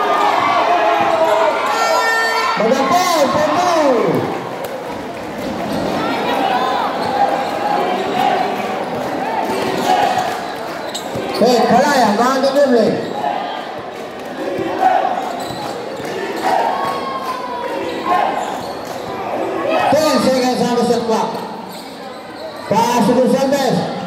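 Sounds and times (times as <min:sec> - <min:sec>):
crowd shouting and talking: 0:00.0 - 0:24.0.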